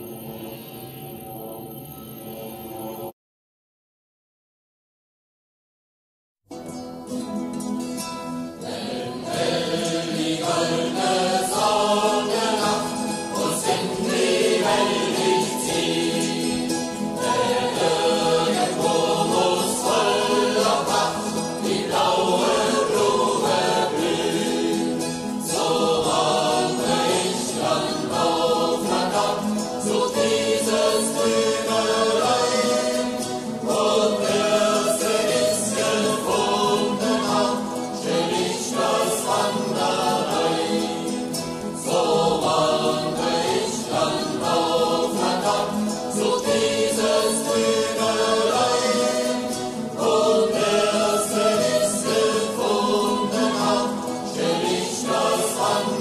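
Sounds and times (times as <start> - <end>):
choir singing: 8.6 - 56.0.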